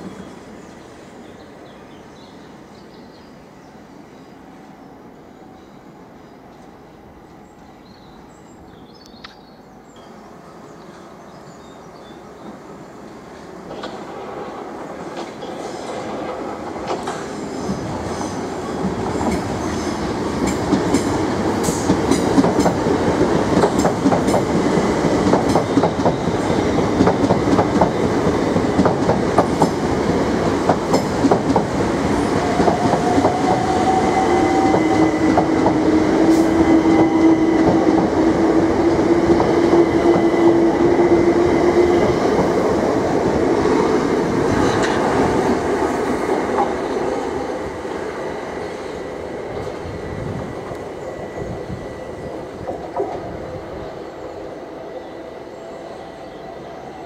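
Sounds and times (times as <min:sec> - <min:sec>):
train wheels rumbling on track: 0:09.1 - 0:54.9.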